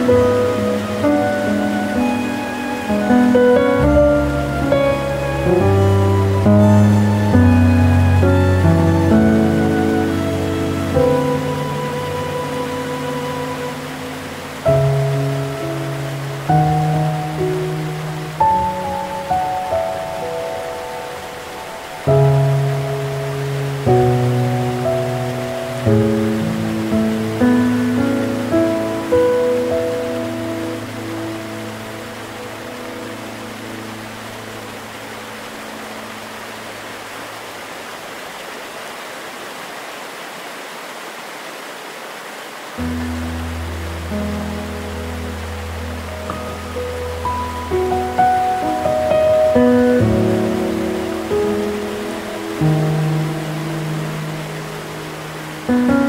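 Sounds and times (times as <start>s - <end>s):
gentle piano music: 0.0s - 38.0s, 42.7s - 56.0s
waterfall rushing: 0.0s - 56.0s.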